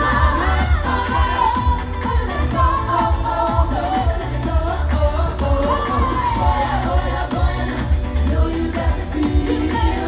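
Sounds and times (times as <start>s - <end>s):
pop song with singing: 0.0s - 10.0s.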